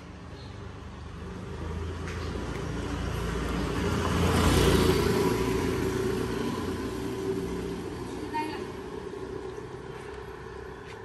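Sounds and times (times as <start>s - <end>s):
motor vehicle passing: 0.0s - 11.0s.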